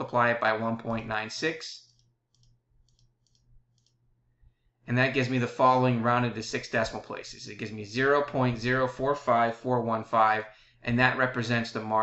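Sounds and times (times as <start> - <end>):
computer mouse clicks: 1.8 - 4.1.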